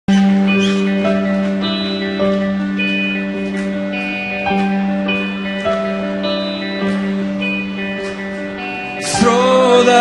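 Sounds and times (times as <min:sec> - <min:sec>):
live band music: 0:00.1 - 0:10.0
picked guitar notes: 0:00.1 - 0:10.0.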